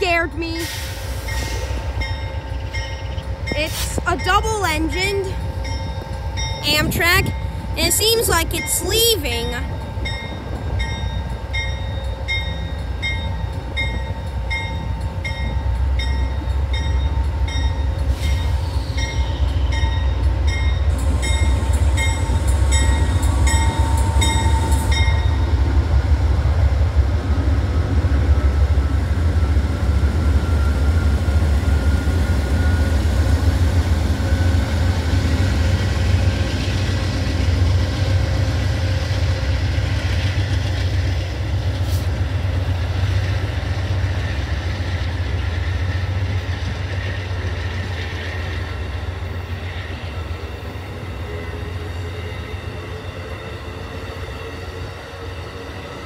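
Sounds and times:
diesel locomotive rumble: 0:00.0 - 0:56.0
train coaches rolling by: 0:00.0 - 0:56.0
locomotive bell ringing: 0:01.3 - 0:25.6.

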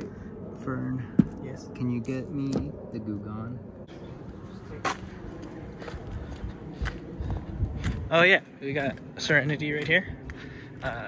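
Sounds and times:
steady low rumble: 0:00.0 - 0:11.0
footsteps on concrete: 0:04.6 - 0:08.1, 0:08.8 - 0:11.0.

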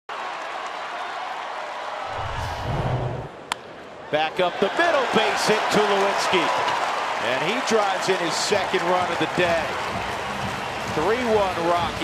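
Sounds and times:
deep rumble: 0:02.1 - 0:03.4.

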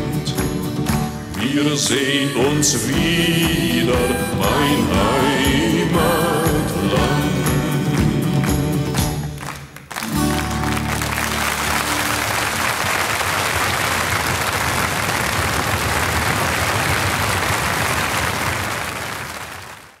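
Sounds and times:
audience applauding: 0:00.0 - 0:20.0.

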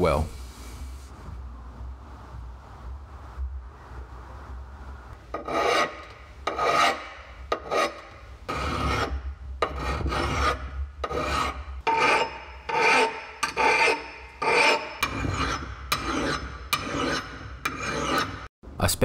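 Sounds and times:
file rasping on steel: 0:05.3 - 0:18.5.

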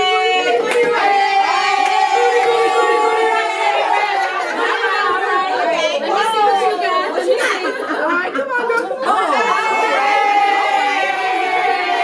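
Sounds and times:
women chattering excitedly: 0:00.0 - 0:12.0.

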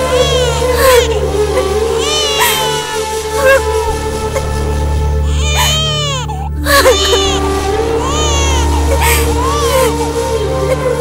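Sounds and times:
infant crying: 0:00.0 - 0:03.8, 0:05.2 - 0:11.0
background music score: 0:00.0 - 0:11.0.

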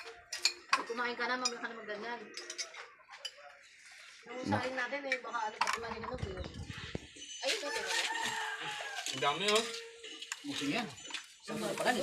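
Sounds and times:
people's voices: 0:00.0 - 0:09.8
rooster crowing: 0:07.5 - 0:09.4.

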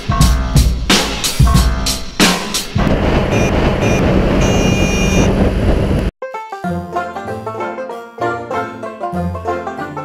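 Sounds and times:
high tone: 0:02.8 - 0:06.1
motorcycle engine: 0:02.8 - 0:06.1
wind noise on helmet: 0:02.8 - 0:06.1.

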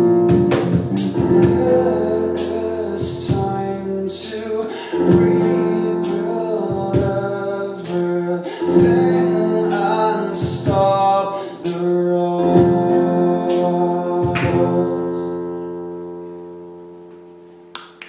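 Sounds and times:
acoustic guitar strumming: 0:00.0 - 0:15.8
man singing: 0:01.1 - 0:15.4.

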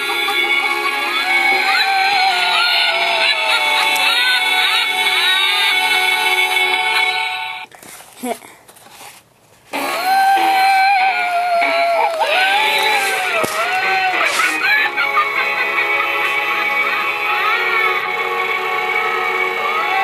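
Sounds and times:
eerie electronic music: 0:00.0 - 0:07.7, 0:09.8 - 0:20.0.

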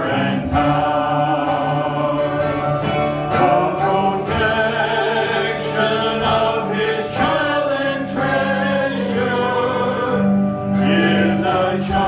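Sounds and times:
electric guitar: 0:00.0 - 0:12.0
group singing worship song: 0:00.0 - 0:12.0.

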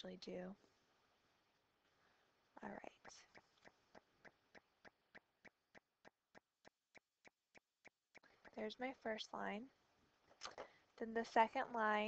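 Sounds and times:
faint ticking: 0:02.9 - 0:09.1.

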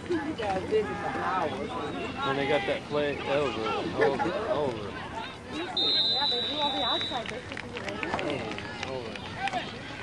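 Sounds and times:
spectators chatting and laughing: 0:00.0 - 0:10.0
referee's whistle: 0:05.7 - 0:07.2.

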